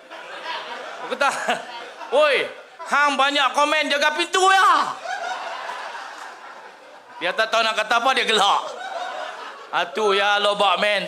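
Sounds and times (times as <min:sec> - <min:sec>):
crowd laughing: 0:00.0 - 0:03.6, 0:04.5 - 0:10.8.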